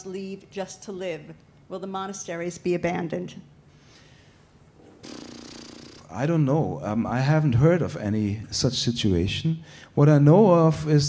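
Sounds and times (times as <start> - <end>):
person drawing breath: 3.7 - 4.6.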